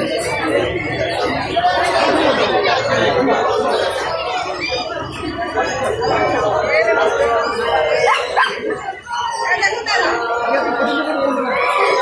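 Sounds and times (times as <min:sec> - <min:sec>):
people talking: 0:00.0 - 0:12.0
dog barking: 0:08.1 - 0:08.6.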